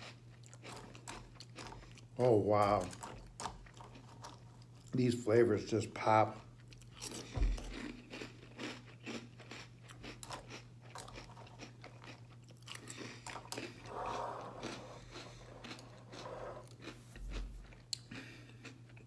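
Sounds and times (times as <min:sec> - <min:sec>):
crunchy cereal being chewed: 0:00.0 - 0:05.1, 0:06.1 - 0:19.0.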